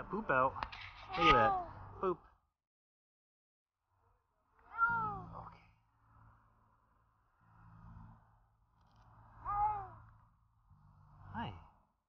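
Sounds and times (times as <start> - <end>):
cat meowing: 1.1 - 1.7, 4.6 - 5.5, 9.4 - 10.0.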